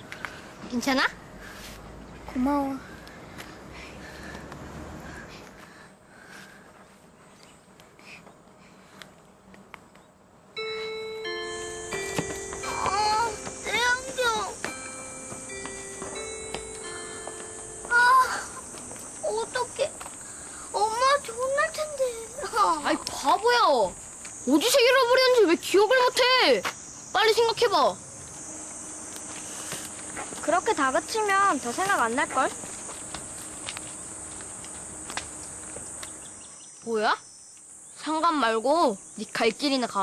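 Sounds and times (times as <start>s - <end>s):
held synth tones: 10.6s - 19.9s
high-pitched insect drone: 10.6s - 40.0s.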